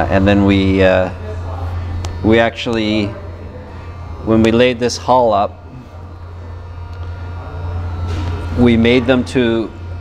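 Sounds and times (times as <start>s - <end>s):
workshop background hum: 0.0s - 10.0s.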